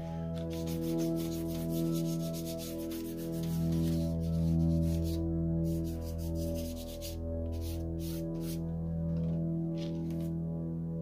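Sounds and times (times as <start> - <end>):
droning background music: 0.0 - 11.0
cloth rag rubbing: 0.5 - 8.6.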